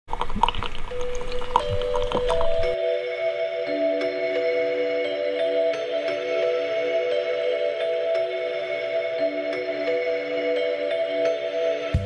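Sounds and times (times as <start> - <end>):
water dripping through coffee dripper: 0.1 - 2.8
ambient music with held tones: 0.1 - 12.0.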